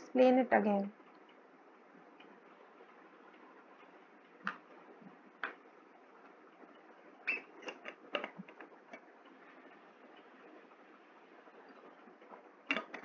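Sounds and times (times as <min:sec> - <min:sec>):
faint room hiss: 0:00.0 - 0:13.0.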